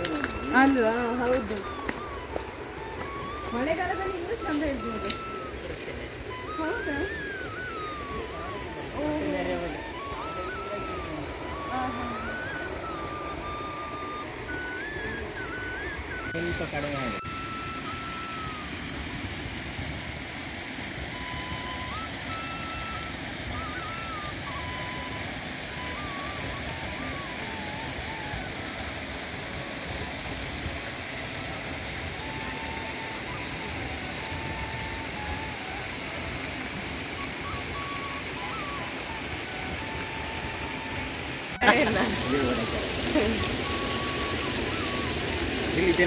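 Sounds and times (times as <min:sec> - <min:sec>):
faint whistled notes: 0:00.0 - 0:19.4, 0:21.0 - 0:30.4, 0:31.0 - 0:46.0
outdoor background noise: 0:00.0 - 0:46.0.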